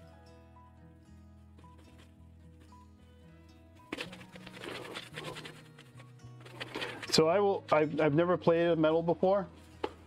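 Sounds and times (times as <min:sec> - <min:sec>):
scrubber pad scratching metal: 0:03.9 - 0:07.1.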